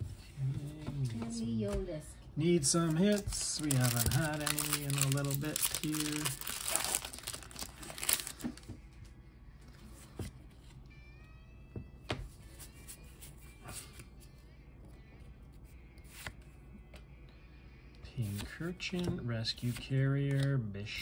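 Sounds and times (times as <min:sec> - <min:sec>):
faint musical tones: 0:00.0 - 0:21.0
foil wrapper crackling: 0:02.8 - 0:08.6.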